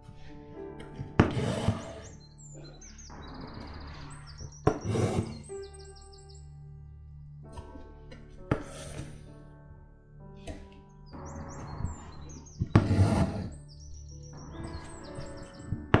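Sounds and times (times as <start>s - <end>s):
soft background music: 0.0s - 16.0s
high chirps: 1.4s - 6.6s, 11.0s - 16.0s.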